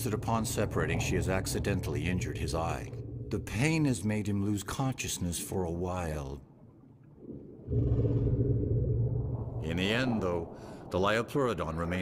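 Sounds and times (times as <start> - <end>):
deep rumbling drone: 0.0 - 4.1, 7.5 - 12.0.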